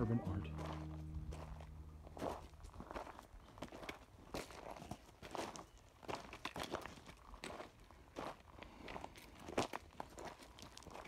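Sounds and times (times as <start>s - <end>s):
footsteps on dirt and stone trail: 0.0s - 11.0s.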